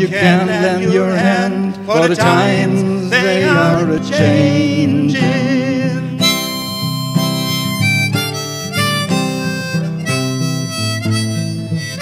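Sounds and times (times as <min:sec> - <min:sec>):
strummed acoustic guitar: 0:00.0 - 0:12.0
harmonica held notes: 0:01.8 - 0:12.0.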